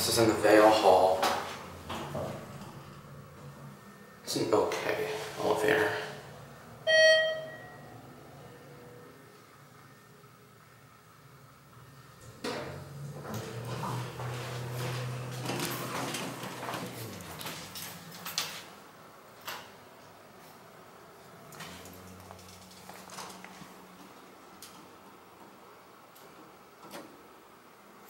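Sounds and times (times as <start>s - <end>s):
elevator car humming: 0.0s - 28.0s
elevator chime: 6.8s - 8.2s.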